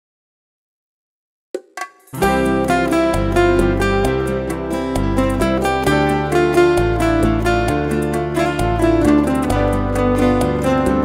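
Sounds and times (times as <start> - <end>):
hand drum: 1.6 - 11.0
plucked notes: 2.0 - 11.0
acoustic guitars: 2.2 - 11.0
low bass: 2.2 - 11.0.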